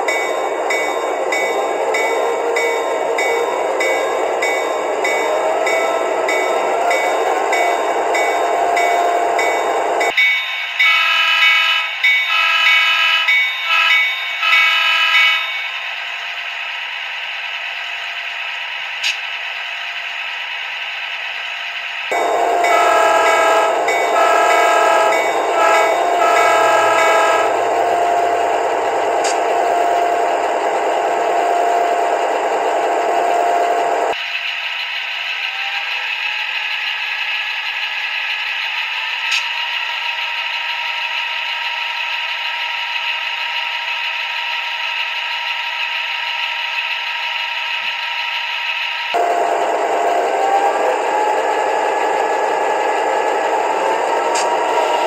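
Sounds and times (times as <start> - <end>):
diesel engine running: 0.0 - 10.1, 16.5 - 55.0
model locomotive horn blasts: 10.8 - 15.5, 22.1 - 28.3.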